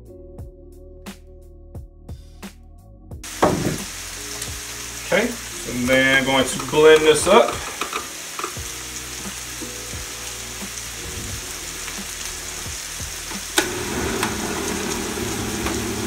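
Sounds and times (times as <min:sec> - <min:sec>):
beef sizzling in a pan: 0:03.2 - 0:16.0.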